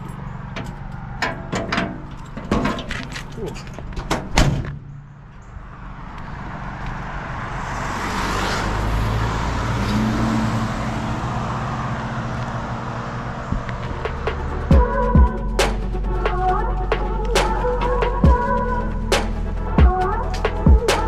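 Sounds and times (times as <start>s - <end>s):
vehicle road noise rumble: 0.0s - 21.0s
steel truck door slamming: 4.0s - 4.9s.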